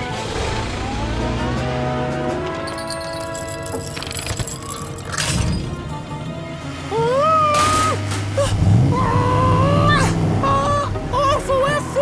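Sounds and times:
cartoon creature whining cries: 0:06.9 - 0:11.0.

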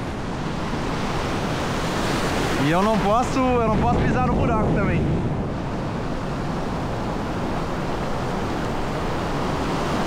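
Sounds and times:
ocean surf washing in: 0:00.0 - 0:10.0
wind on microphone: 0:00.0 - 0:10.0.

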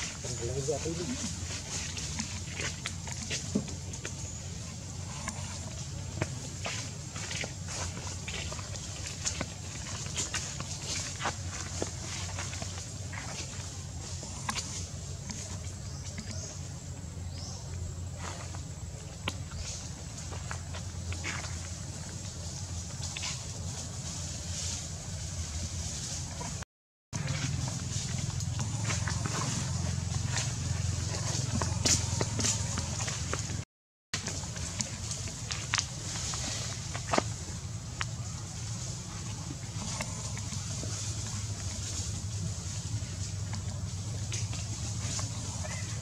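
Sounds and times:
steady low rumble: 0:34.2 - 0:46.0.

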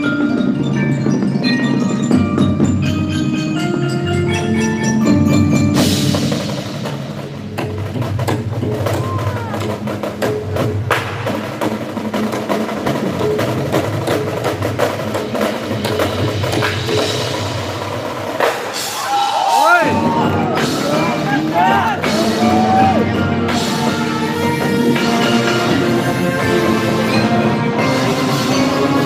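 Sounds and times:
drum and wood-block strokes: 0:00.0 - 0:29.0
marching band playing: 0:00.0 - 0:29.0.

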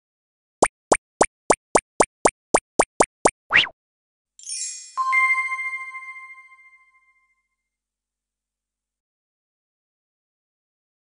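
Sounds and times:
cartoon plops: 0:00.6 - 0:03.8.

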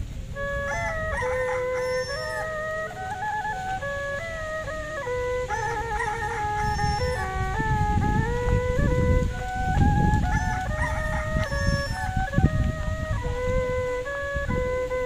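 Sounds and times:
flute-like melody: 0:00.0 - 0:15.0.

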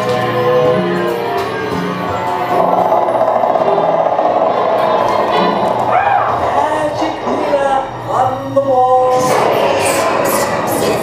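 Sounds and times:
soundtrack music: 0:00.0 - 0:11.0.

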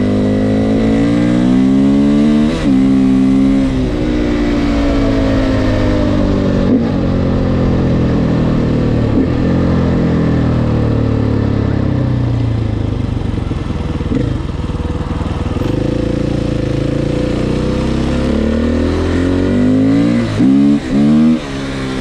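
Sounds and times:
motorcycle engine revving: 0:00.0 - 0:22.0.

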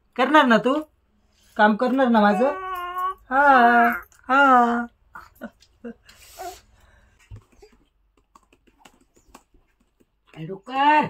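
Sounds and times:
faint keyboard typing: 0:07.4 - 0:10.4.

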